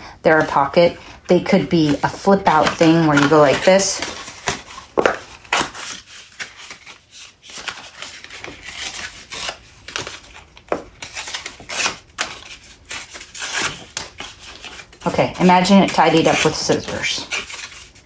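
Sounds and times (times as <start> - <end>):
stiff paper rustling and snapping: 1.8 - 18.0.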